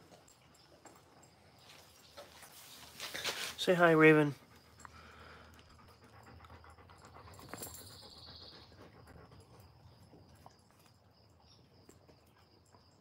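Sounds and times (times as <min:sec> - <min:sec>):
puppy panting: 0:04.4 - 0:10.8.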